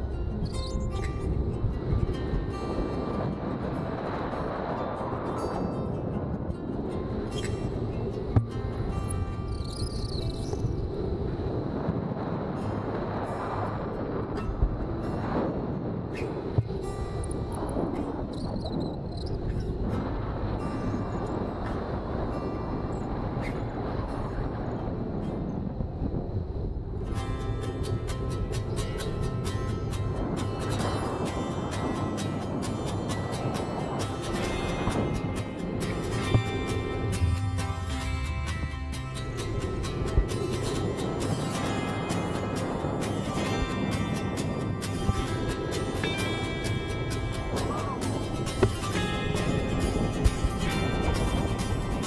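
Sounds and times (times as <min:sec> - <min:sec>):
wind rushing over microphone: 0:00.0 - 0:52.0.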